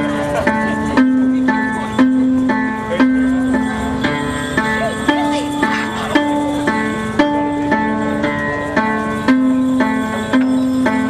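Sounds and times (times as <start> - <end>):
zither plucked notes: 0.0 - 11.0.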